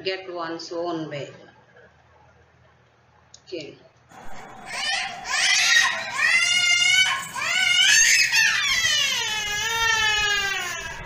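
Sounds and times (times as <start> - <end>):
girl crying and screaming: 4.7 - 11.0.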